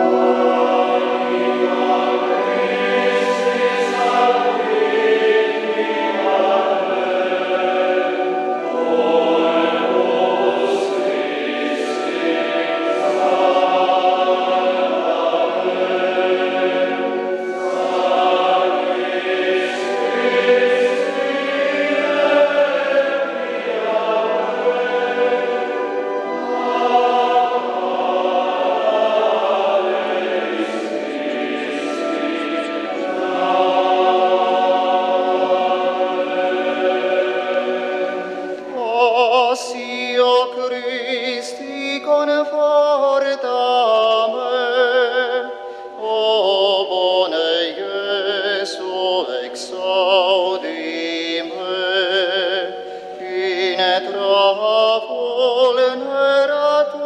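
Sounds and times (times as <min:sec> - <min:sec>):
men's choir singing: 0:00.0 - 0:57.0.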